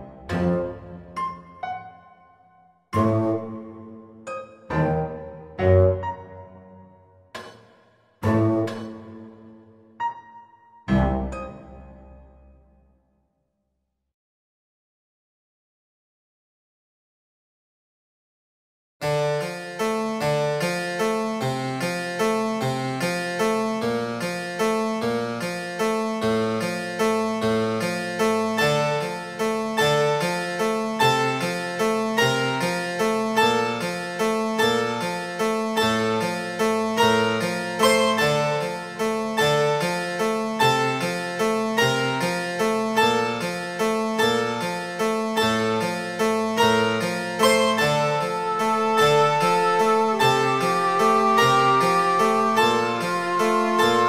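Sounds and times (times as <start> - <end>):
classical keyboard music: 3.0 - 7.0, 46.8 - 54.0.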